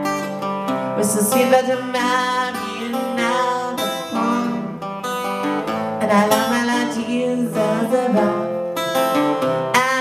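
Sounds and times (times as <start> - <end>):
two acoustic guitars playing: 0.0 - 10.0.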